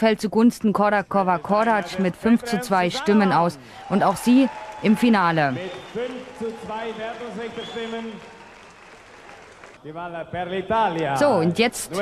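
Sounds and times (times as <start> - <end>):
audience applauding: 3.0 - 9.8
man speaking over loudspeakers: 5.5 - 8.2, 9.8 - 12.0.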